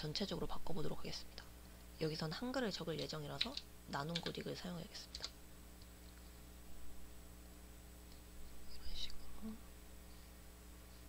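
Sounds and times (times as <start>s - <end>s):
person whispering: 8.6s - 9.7s.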